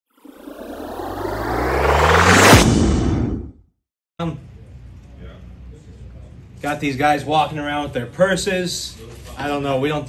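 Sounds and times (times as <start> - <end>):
low drone: 0.2 - 3.6
rush of noise: 0.2 - 3.6.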